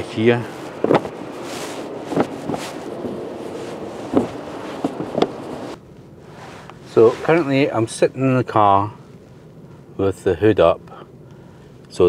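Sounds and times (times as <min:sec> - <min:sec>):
wind on microphone: 0:00.0 - 0:05.8.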